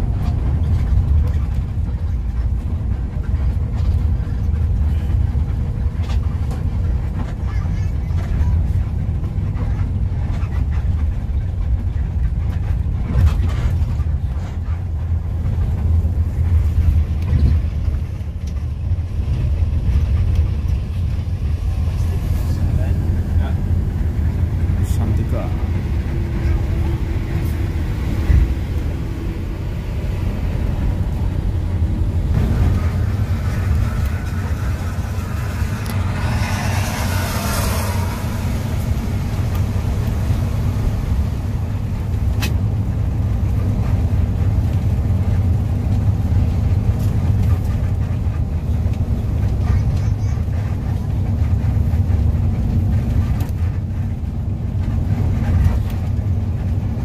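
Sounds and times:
coach engine and tyres drone: 0:00.0 - 0:57.0
rushing noise: 0:08.2 - 0:57.0.

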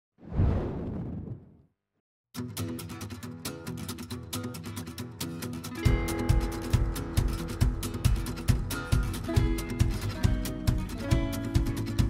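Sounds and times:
deep rushing whoosh: 0:00.2 - 0:01.6.

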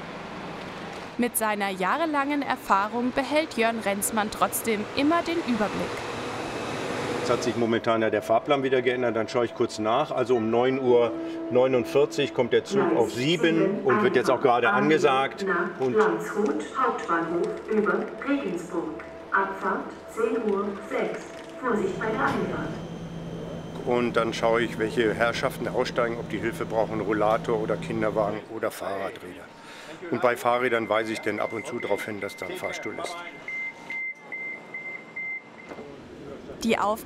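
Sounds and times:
loudspeaker announcement: 0:09.0 - 0:22.8
train door warning beeps: 0:19.3 - 0:25.1, 0:30.1 - 0:35.8.

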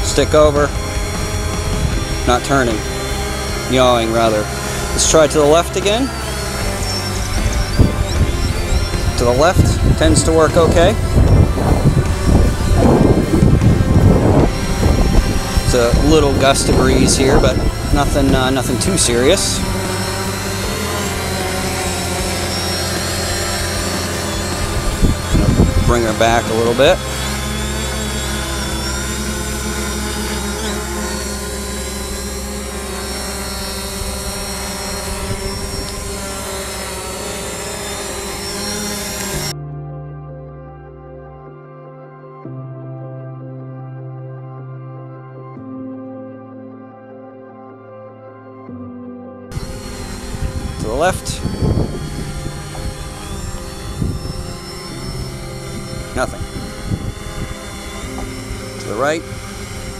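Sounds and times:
drone propellers humming: 0:00.0 - 0:59.9
soft ambient music: 0:00.0 - 0:59.9.

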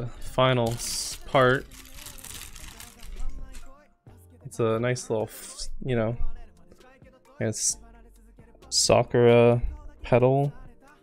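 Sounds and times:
plastic bag crinkling: 0:00.5 - 0:03.8.

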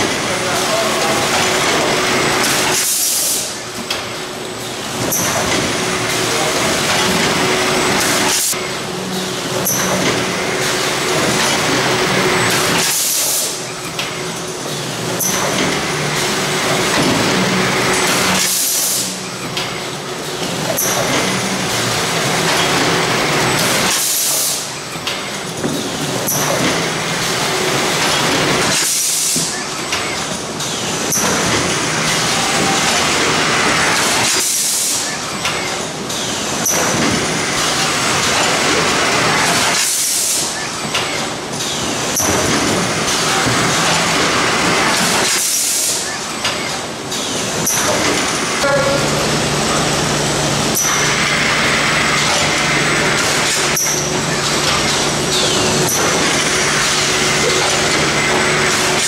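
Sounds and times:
steady machinery noise: 0:00.0 - 0:59.0.

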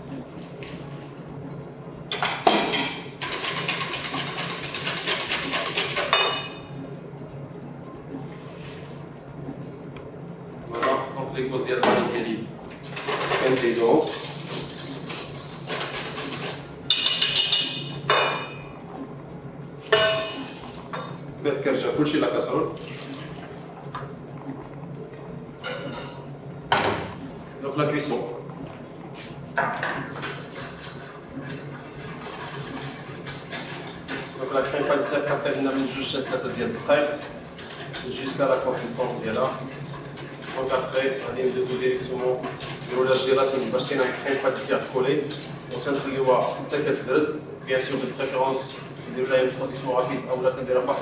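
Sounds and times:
utensil scraping in plastic sieve: 0:12.9 - 0:16.7.

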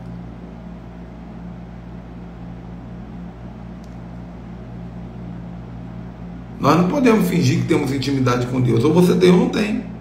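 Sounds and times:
low droning hum with hiss: 0:00.0 - 0:10.0.

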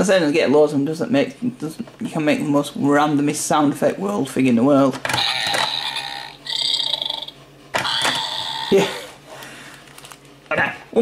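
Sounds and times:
toy electronic gross-out noises: 0:05.1 - 0:08.7.

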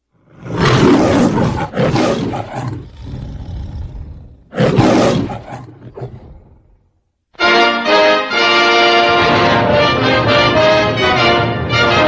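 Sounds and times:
lion roaring: 0:00.0 - 0:07.0.

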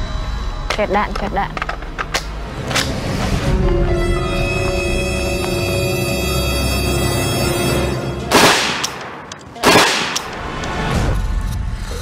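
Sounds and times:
tense background music: 0:00.0 - 0:12.0
loud bangs: 0:08.2 - 0:11.2.

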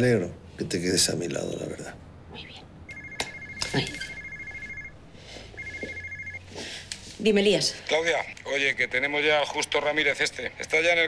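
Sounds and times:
two-tone electronic ringtone trill: 0:02.9 - 0:06.4.

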